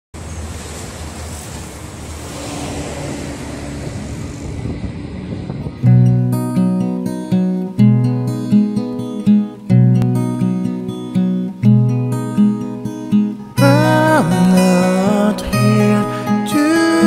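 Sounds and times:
road traffic noise: 0.1 - 7.8
acoustic guitar strummed chords: 4.5 - 17.0.

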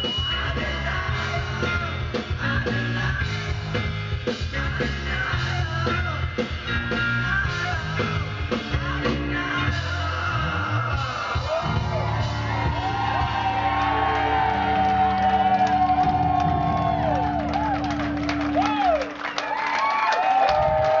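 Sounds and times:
live rock band playing: 0.0 - 19.4
crowd cheering and whooping: 10.3 - 21.0.

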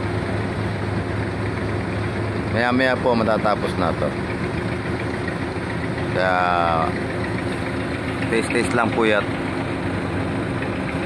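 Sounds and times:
truck engine idling: 0.0 - 11.0.

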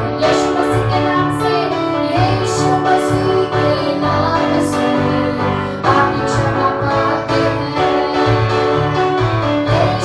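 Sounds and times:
electronic keyboard chords: 0.0 - 10.0
woman singing into microphone: 0.0 - 10.0.

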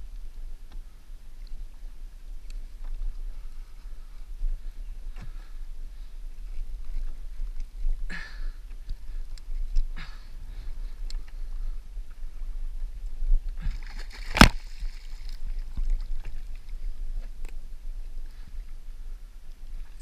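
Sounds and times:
water splashing against kayak hull: 6.0 - 18.7.

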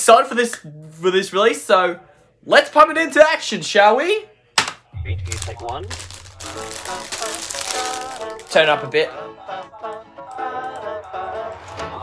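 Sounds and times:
low steady bass tone: 5.0 - 7.2
person speaking: 5.0 - 9.0
crinkly noise: 5.2 - 8.7.

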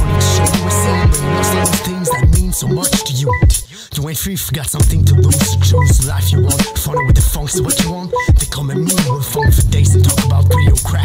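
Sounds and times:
short pitched notes: 0.0 - 2.8
deep bass line: 0.0 - 3.6, 4.8 - 7.7, 9.4 - 11.0
hip hop drum beat: 0.0 - 3.8, 4.7 - 11.0
person rapping: 0.0 - 11.0.

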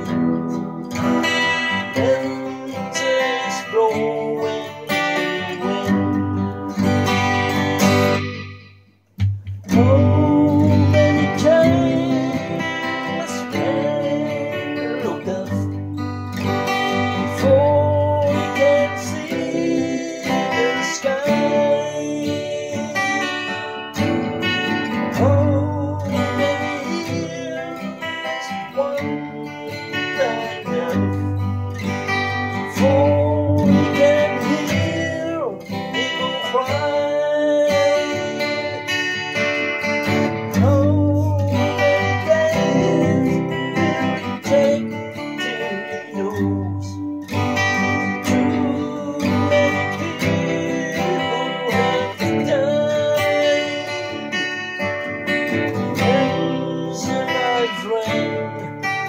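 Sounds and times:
acoustic guitar strummed in chords: 0.0 - 59.0.

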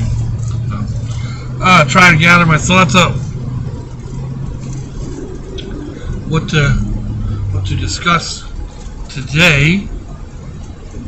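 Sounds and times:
vehicle engine hum inside cabin: 0.0 - 11.0.

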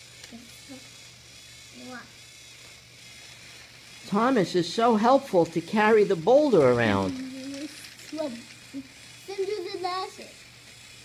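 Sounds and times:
toy train whirring: 0.0 - 11.0.

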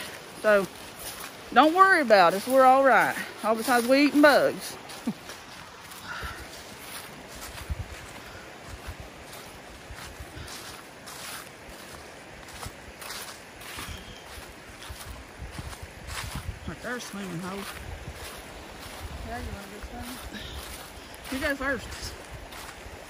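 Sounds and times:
creek water rushing: 0.0 - 23.0
footsteps crunching on trail: 0.0 - 23.0.

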